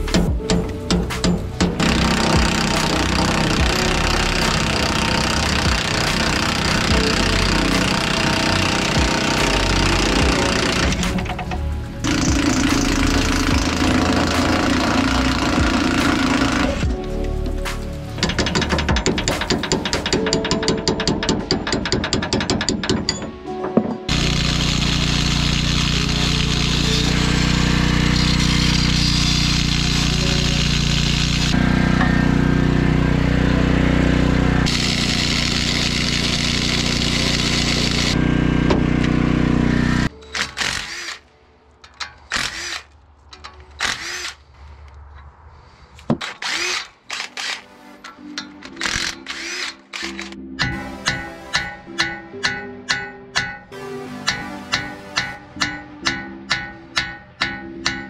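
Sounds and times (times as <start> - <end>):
angle grinder cutting metal: 1.2 - 16.9, 24.0 - 41.2, 46.3 - 58.0
ratchet wrench clicking: 18.2 - 23.2, 48.4 - 50.4.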